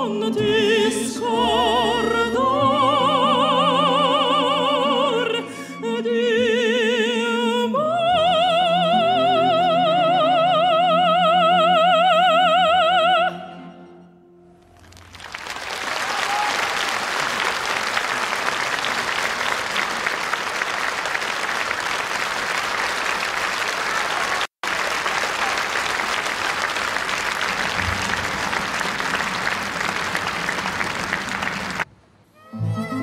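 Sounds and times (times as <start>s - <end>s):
audience applauding: 14.7s - 31.9s.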